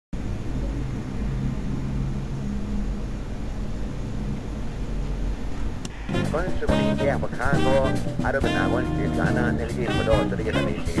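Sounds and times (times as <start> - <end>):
faint low hum: 0.2 - 11.0
steady low rumble: 0.2 - 11.0.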